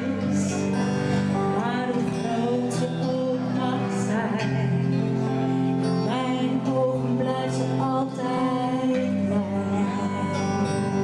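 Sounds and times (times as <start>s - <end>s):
bass guitar: 0.0s - 11.0s
electric guitar: 0.0s - 11.0s
woman singing: 0.0s - 11.0s.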